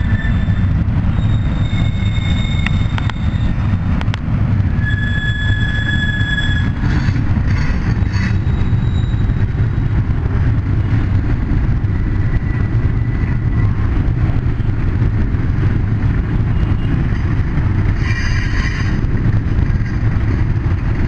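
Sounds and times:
high steel wheel squeal: 0.0 - 3.7, 4.8 - 9.5, 17.9 - 19.1
train wheels rumbling on rail: 0.0 - 21.0.

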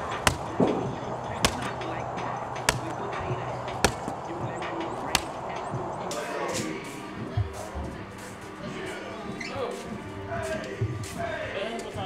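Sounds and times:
sharp slap-like crack: 1.4 - 1.8, 2.7 - 3.0, 3.8 - 4.2, 5.1 - 5.4.

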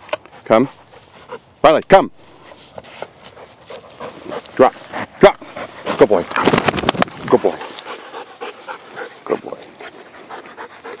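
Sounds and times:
dog panting: 0.0 - 1.6, 2.4 - 11.0.

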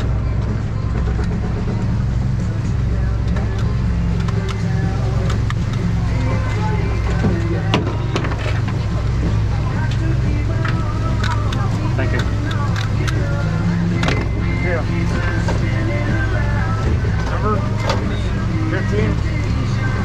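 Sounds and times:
boat engines droning: 0.0 - 20.0
indistinct voices: 0.0 - 20.0.

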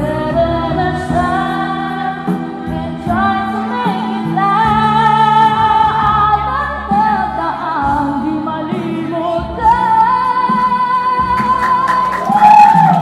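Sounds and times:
backing music: 0.0 - 13.0
woman singing into microphone: 0.0 - 13.0.

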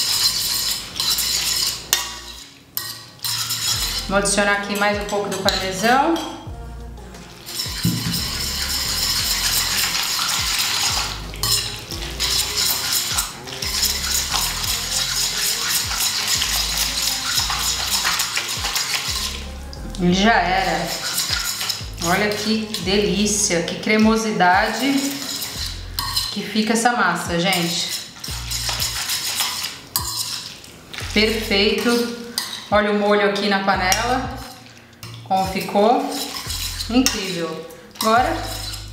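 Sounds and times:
metal fork scraping frying pan: 0.0 - 6.5, 7.3 - 26.8, 27.4 - 38.9.

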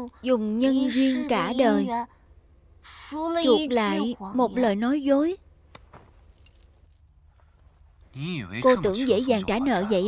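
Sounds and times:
low steady hum: 0.0 - 10.0
faint metallic jingling: 6.2 - 7.8.

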